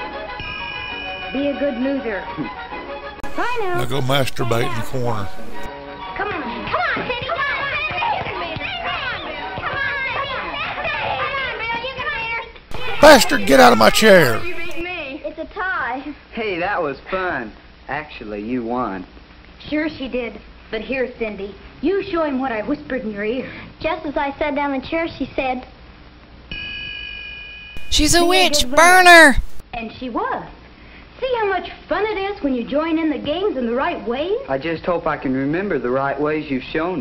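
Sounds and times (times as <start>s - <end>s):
person speaking: 3.2s - 5.7s, 12.7s - 14.8s, 27.8s - 29.6s
children calling out excitedly: 12.7s - 14.8s, 27.8s - 29.6s.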